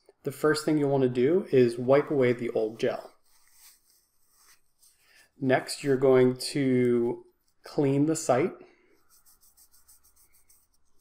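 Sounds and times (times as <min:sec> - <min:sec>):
wipe scrubbing skin: 0:02.4 - 0:05.3, 0:09.0 - 0:11.0.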